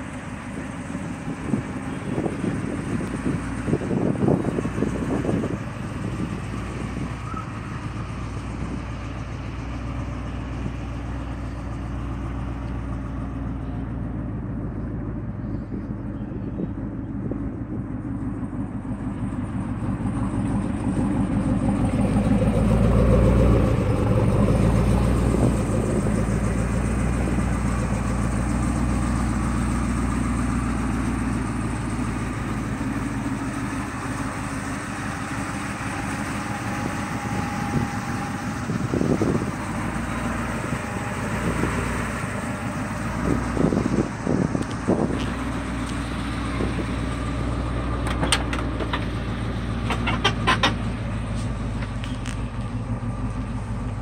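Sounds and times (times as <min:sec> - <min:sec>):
truck engine idling: 0:00.0 - 0:54.0.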